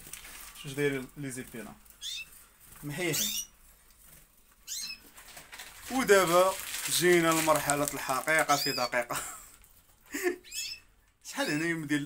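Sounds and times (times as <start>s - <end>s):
canary chirp: 0.6s - 4.0s, 4.6s - 6.3s, 7.7s - 12.0s.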